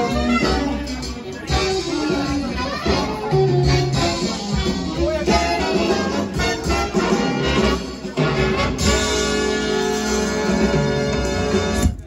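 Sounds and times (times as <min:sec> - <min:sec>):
dj music over loudspeakers: 0:00.0 - 0:12.0.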